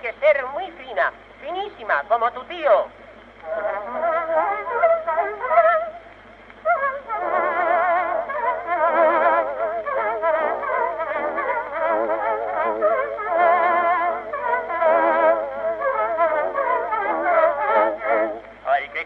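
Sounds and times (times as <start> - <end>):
muffled old instrumental recording: 0.0 - 19.0.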